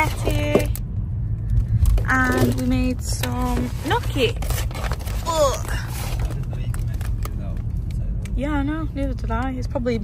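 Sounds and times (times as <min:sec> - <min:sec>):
car interior rumble: 0:00.0 - 0:10.0.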